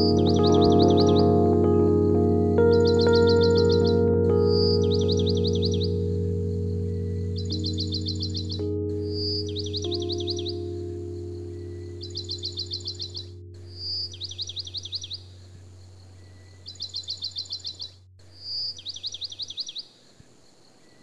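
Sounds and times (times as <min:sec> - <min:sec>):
songbird whistling and chirping: 0:00.0 - 0:01.2, 0:07.1 - 0:08.6, 0:11.6 - 0:15.3, 0:16.2 - 0:19.9
held music chord: 0:00.0 - 0:16.2.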